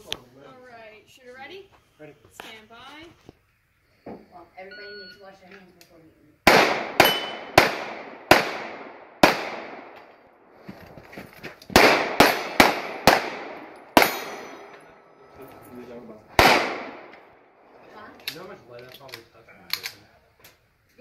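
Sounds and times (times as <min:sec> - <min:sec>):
pistol shots with echo: 0:06.4 - 0:10.1, 0:11.7 - 0:14.9, 0:16.3 - 0:17.2.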